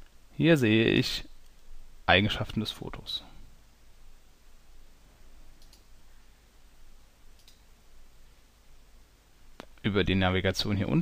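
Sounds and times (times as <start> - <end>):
low hiss: 0.0 - 11.0
computer mouse clicks: 5.6 - 5.9, 7.3 - 7.7.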